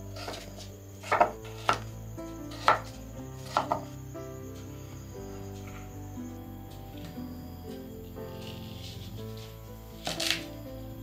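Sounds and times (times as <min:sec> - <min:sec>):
background music: 0:00.0 - 0:11.0
knife chopping on wooden board: 0:01.0 - 0:01.8.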